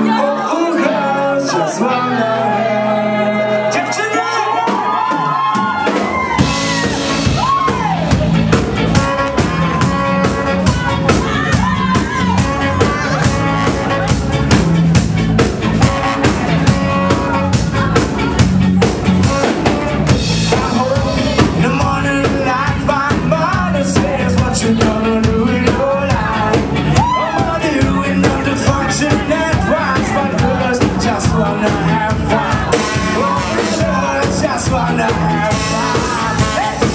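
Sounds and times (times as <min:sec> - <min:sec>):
ska band playing: 0:00.0 - 0:36.9
saxophone and horn melody: 0:06.2 - 0:36.9.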